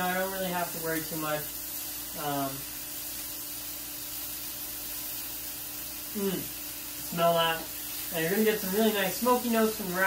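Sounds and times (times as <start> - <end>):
food sizzling in grill pan: 0.0 - 10.0.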